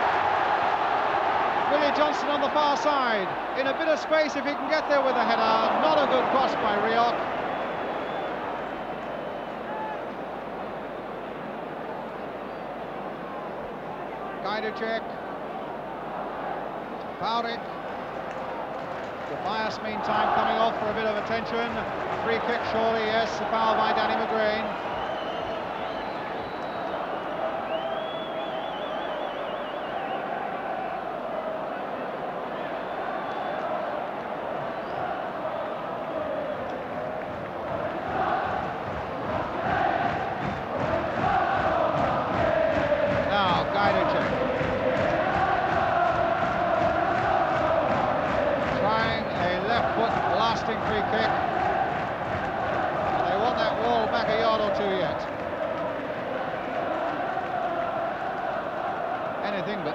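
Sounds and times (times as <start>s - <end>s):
crowd chanting and singing: 0.0s - 59.9s.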